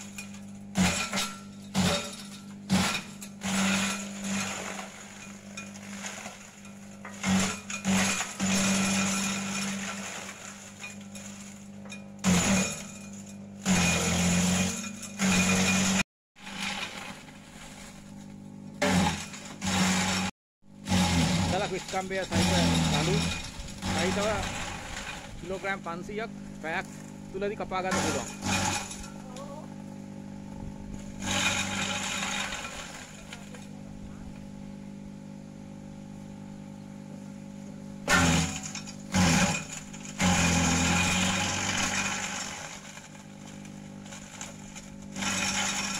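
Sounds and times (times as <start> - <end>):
shredder crunching branches: 0.0 - 34.5, 38.0 - 45.9
shredder motor hum: 0.0 - 45.9.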